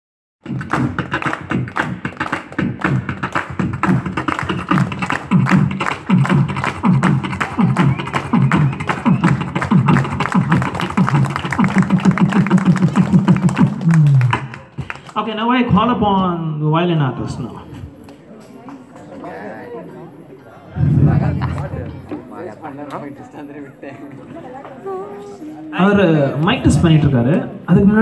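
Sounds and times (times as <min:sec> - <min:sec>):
man beatboxing: 0:00.4 - 0:15.2.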